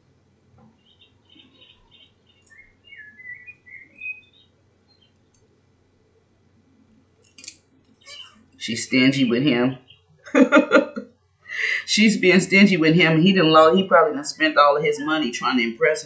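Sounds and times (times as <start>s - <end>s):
bird chirping high notes: 8.0s - 8.4s.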